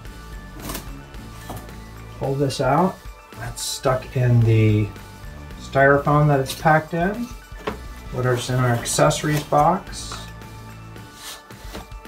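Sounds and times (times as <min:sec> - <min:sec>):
background music with held tones: 0:00.0 - 0:12.0
styrofoam and cardboard scraping: 0:08.2 - 0:10.2, 0:11.0 - 0:12.0.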